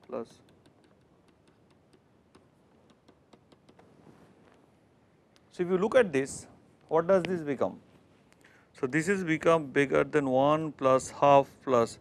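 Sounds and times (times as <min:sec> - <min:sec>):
stylus tapping on tablet: 0:00.0 - 0:04.0.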